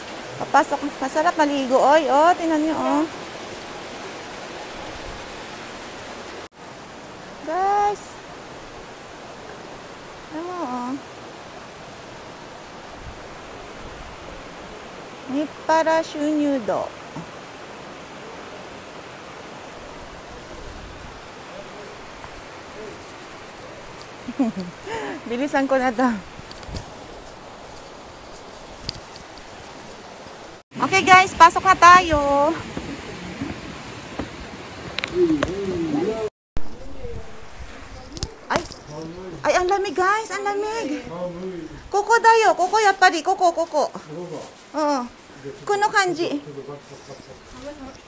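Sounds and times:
outdoor background hiss: 0.0s - 48.0s
stream running over rocks: 0.0s - 48.0s.

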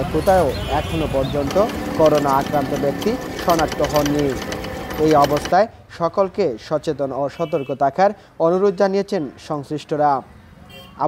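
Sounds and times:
man narrating: 0.0s - 4.4s.

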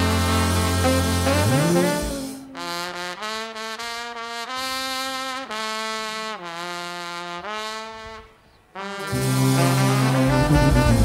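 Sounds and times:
brass band playing: 0.0s - 11.0s
lone trumpet sustained notes: 0.0s - 11.0s.

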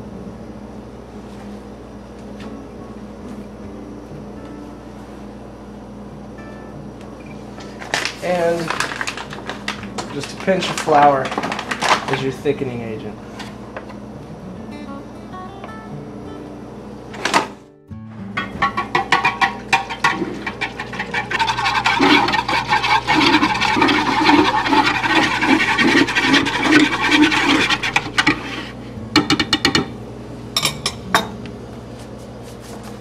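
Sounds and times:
whisk clattering in glass bowl: 18.6s - 28.6s.

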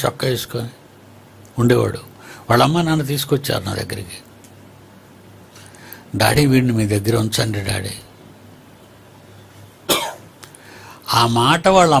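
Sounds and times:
man speaking: 0.0s - 0.8s, 1.6s - 4.3s, 6.1s - 8.1s, 11.1s - 12.0s
man coughing: 9.9s - 10.3s.

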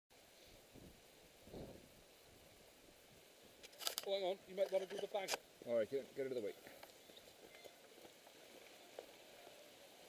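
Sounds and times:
outdoor background hiss: 0.1s - 10.0s
short clicks or rustles: 3.6s - 5.4s.

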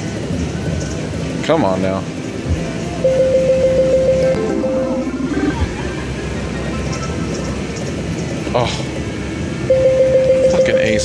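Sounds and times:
casino machine noise: 0.0s - 11.0s
falling run of electronic notes: 2.9s - 7.6s
pulsing electronic beep: 3.0s - 7.5s, 9.6s - 11.0s.

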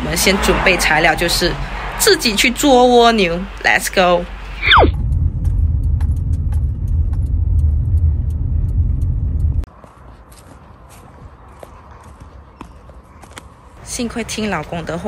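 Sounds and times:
car road noise rumble: 0.0s - 12.0s.

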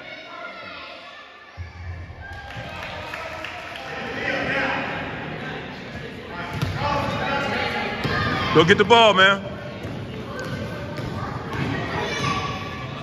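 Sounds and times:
echoing voices: 0.0s - 13.0s.

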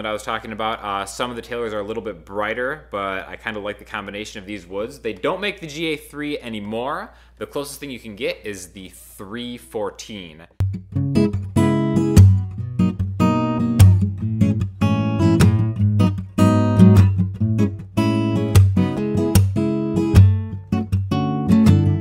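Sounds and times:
fingerpicked acoustic guitar: 10.6s - 22.0s.

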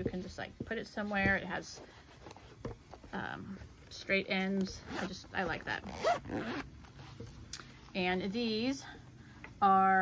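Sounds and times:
zipper being drawn open: 4.7s - 7.3s.

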